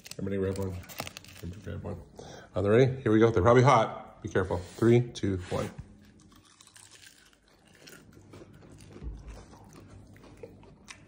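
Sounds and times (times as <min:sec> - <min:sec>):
crunchy food chewing: 0:06.0 - 0:11.0.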